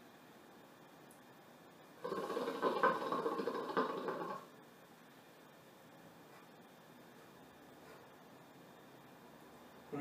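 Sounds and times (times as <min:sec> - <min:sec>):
hookah water bubbling: 0:02.0 - 0:04.6.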